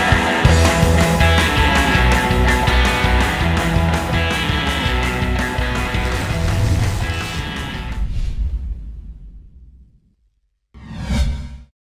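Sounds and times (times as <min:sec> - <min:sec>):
whoosh sound effect: 0:05.7 - 0:10.0, 0:10.8 - 0:11.7.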